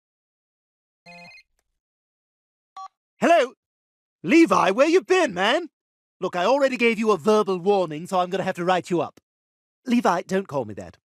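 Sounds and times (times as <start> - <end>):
cell phone ringtone: 1.1 - 1.5.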